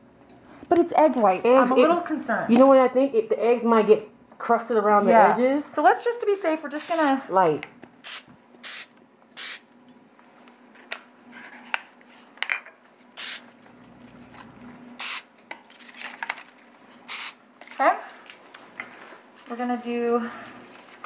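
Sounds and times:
oil spray can hissing: 8.0s - 9.6s, 13.2s - 13.4s, 15.0s - 15.2s, 17.1s - 17.4s
paper rustling: 17.6s - 21.0s.

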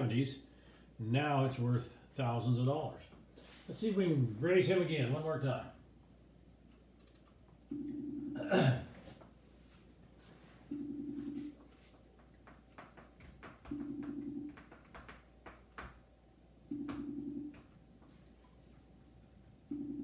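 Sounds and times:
faint clicks: 6.7s - 7.4s
buzzing call ringing tone: 10.7s - 11.6s, 16.7s - 17.6s.

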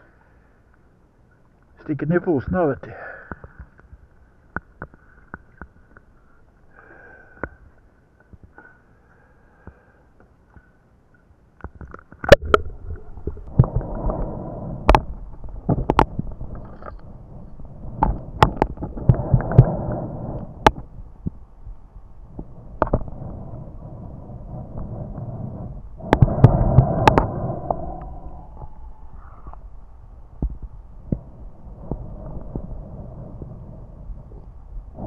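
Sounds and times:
muffled underwater water noise: 0.0s - 35.0s.

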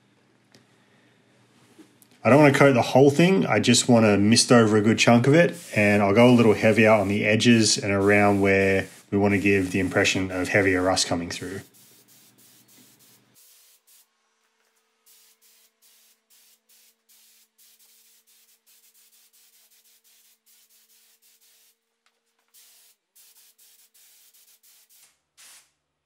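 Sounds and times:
paint sprayer hissing: 3.7s - 21.8s, 22.4s - 25.8s.

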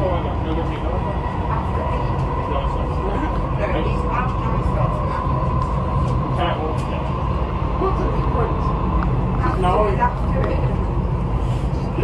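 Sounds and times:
faint passenger voices: 0.0s - 12.0s
train rumbling on track: 0.0s - 12.0s.

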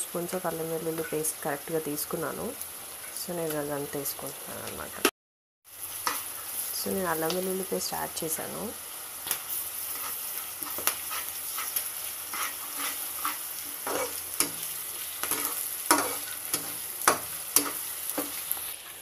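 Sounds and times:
vegetables sizzling in hot oil: 0.0s - 5.1s, 5.7s - 19.0s
spatula scraping and knocking pan: 9.9s - 18.4s.

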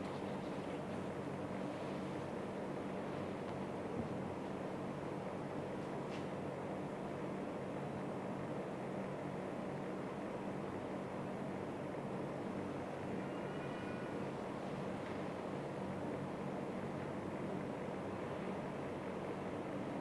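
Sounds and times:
low mechanical hum: 0.0s - 20.0s
room noise hiss: 0.0s - 20.0s.

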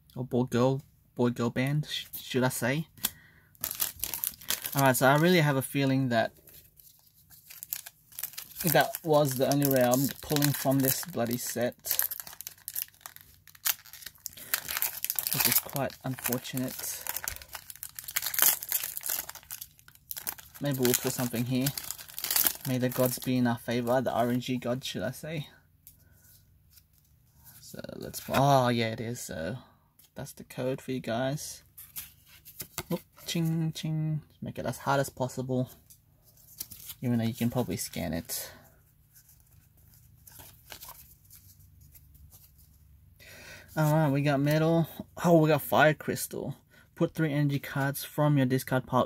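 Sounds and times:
trading cards rustling and clicking: 3.0s - 5.4s, 6.4s - 24.4s, 39.1s - 42.7s
foil wrapper tearing and crinkling: 3.6s - 5.0s, 7.3s - 23.3s.

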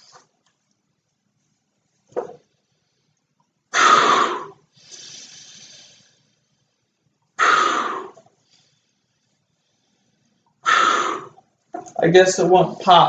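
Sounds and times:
man blowing into balloon: 3.7s - 6.0s, 7.4s - 8.2s, 10.6s - 11.4s.

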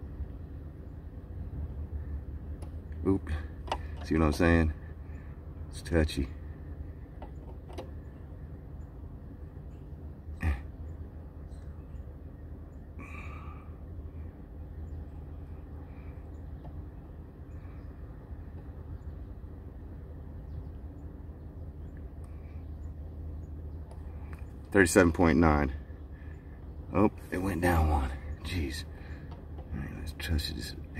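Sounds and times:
car engine idling: 0.6s - 30.9s.

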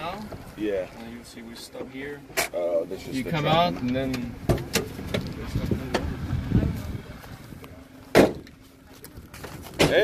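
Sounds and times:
loud sharp knock: 8.1s - 8.4s.

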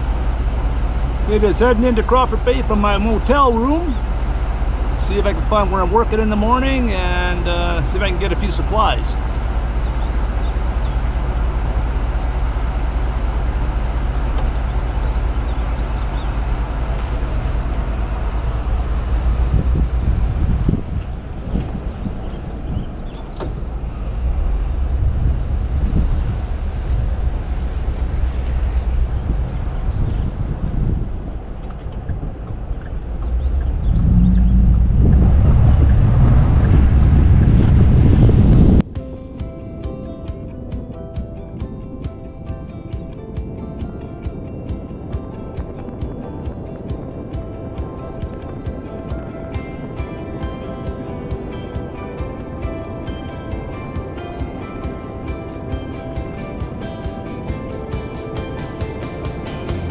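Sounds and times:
car driving: 0.0s - 59.9s
wind rumbling on microphone: 0.0s - 59.9s.

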